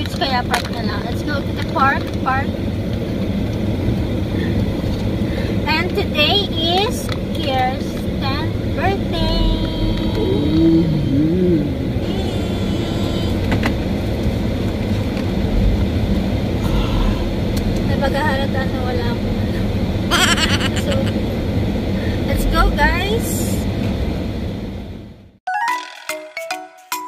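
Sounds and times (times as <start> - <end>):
people talking: 0.0 - 2.5, 5.6 - 13.5, 16.6 - 21.2, 22.1 - 23.7
car engine rumble: 0.0 - 25.4
road noise inside car: 0.0 - 25.4.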